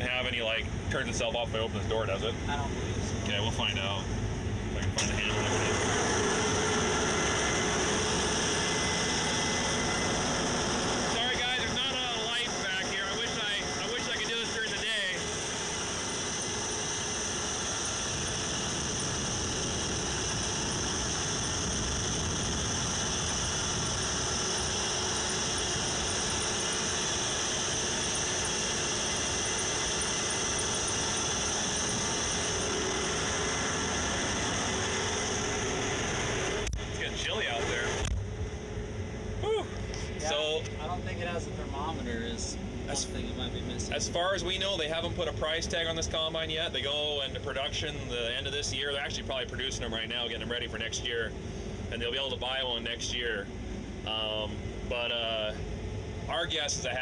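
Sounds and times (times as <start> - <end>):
combine harvester running: 0.0 - 57.0.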